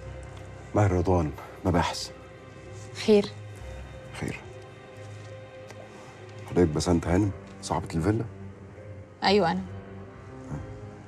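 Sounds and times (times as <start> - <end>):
quiet ambient music with held tones: 0.0 - 11.0.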